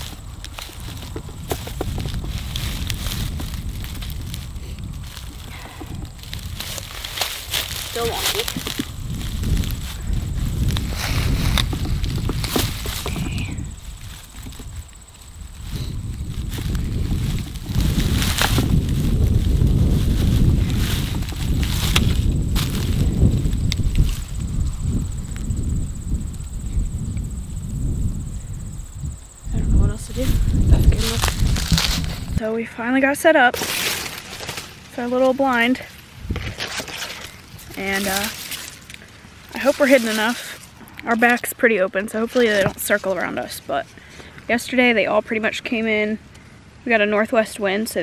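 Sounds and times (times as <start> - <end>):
footsteps crunching dry corn stubble: 0.0 - 26.3, 29.6 - 32.5, 33.4 - 43.7
wind rumble on microphone: 0.0 - 43.8.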